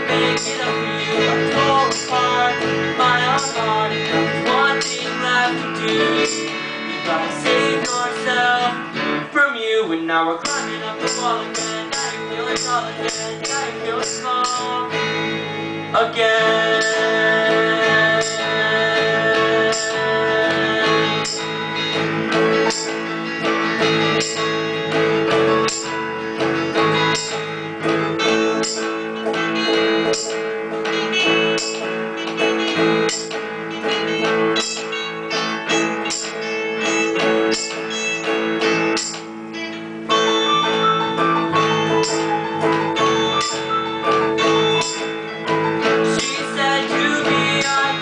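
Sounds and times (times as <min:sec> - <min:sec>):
bass guitar: 0:00.0 - 0:48.0
electric guitars strumming: 0:00.0 - 0:48.0.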